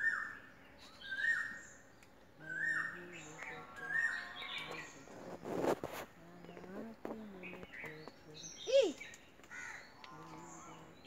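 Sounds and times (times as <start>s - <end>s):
faint small bird chirps: 6.4s - 11.0s.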